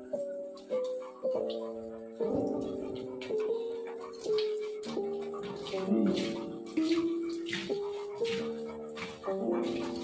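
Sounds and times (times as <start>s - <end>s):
background music of held notes: 0.0s - 10.0s
hand shower water spray: 4.2s - 10.0s.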